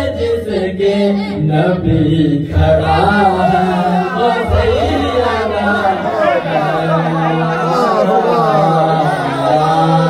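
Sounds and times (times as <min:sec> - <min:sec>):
men chanting through microphones: 0:00.0 - 0:10.0.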